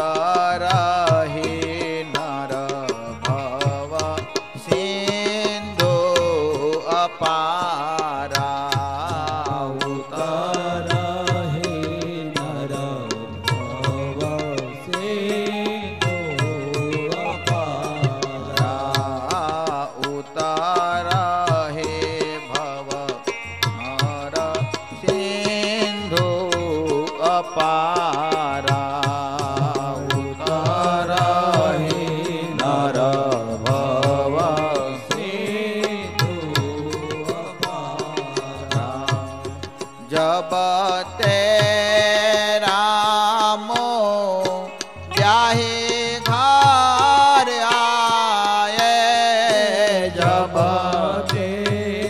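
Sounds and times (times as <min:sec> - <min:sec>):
man singing into a microphone: 0:00.0 - 0:52.0
sharp percussion strikes: 0:00.0 - 0:52.0.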